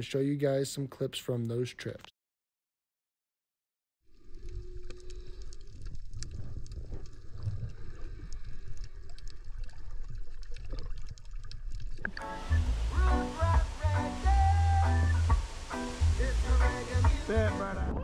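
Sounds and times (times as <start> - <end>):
underwater rumble of moving water: 4.1 - 13.9
crackling clicks: 4.4 - 12.3
acoustic guitar music: 12.2 - 18.0.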